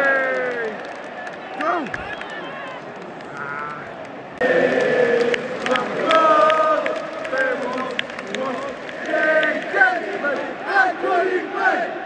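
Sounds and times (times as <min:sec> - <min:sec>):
stadium crowd singing: 0:04.4 - 0:12.0.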